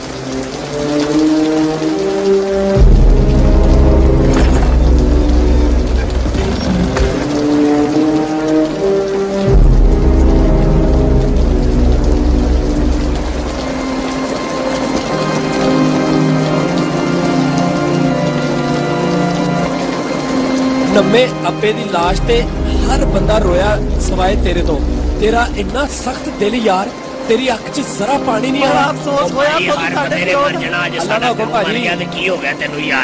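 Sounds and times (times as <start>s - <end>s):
slow sombre film score: 0.0s - 33.0s
steady hiss of rain: 0.0s - 33.0s.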